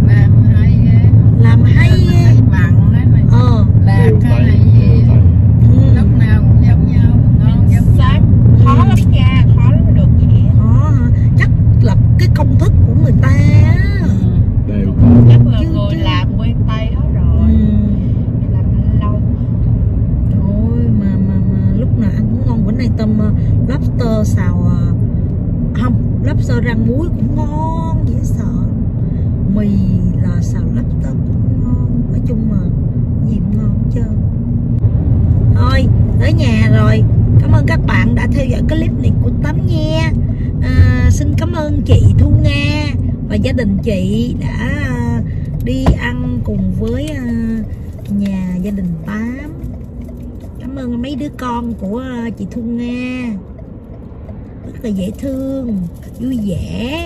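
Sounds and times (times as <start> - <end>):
people talking: 0.0 - 19.3, 20.3 - 25.0, 25.8 - 28.8, 29.5 - 34.3, 35.6 - 49.7, 50.6 - 53.4, 54.7 - 57.0
road rumble inside car: 0.0 - 57.0.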